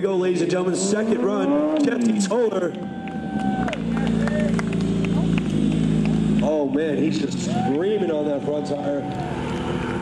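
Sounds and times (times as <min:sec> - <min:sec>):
motorcycle engine: 0:00.0 - 0:10.0.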